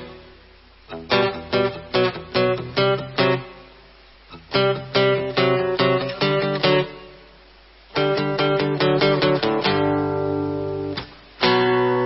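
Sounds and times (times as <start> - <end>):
strummed guitar chords: 0.0 - 12.0.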